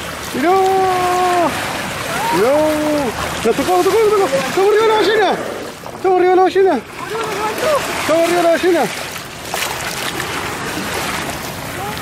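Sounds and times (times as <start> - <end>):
water sloshing against kayak hull: 0.0 - 12.0.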